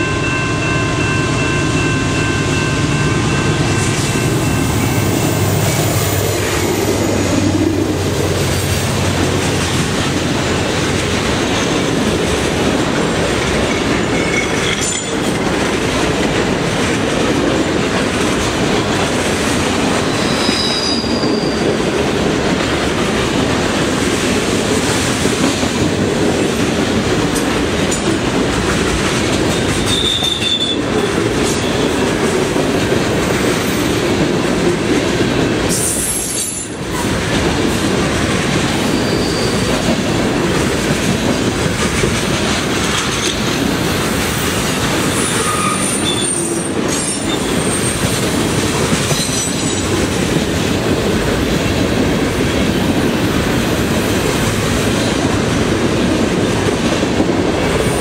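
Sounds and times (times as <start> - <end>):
train wheels rumbling on rail: 0.0 - 58.0
clickety-clack over rail joints: 3.8 - 58.0
high-pitched wheel squeals: 20.1 - 21.7, 29.9 - 30.8, 38.9 - 39.7, 45.1 - 48.0.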